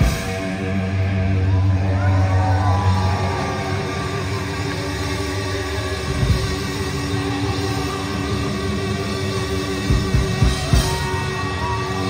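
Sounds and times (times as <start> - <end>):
live hard rock band: 0.0 - 12.0.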